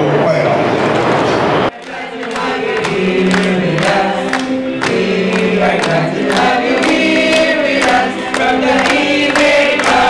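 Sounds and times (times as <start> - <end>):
group of voices singing: 1.7 - 10.0.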